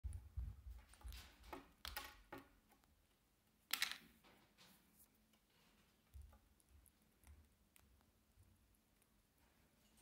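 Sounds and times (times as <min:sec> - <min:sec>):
small objects tapping on wooden table: 0:01.0 - 0:02.6, 0:03.7 - 0:04.2.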